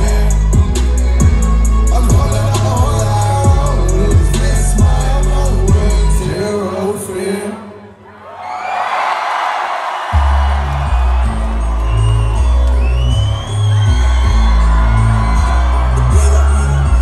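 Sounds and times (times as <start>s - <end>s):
rap track bass beat: 0.0s - 6.5s
crowd cheering and screaming: 0.0s - 7.3s, 7.9s - 17.0s.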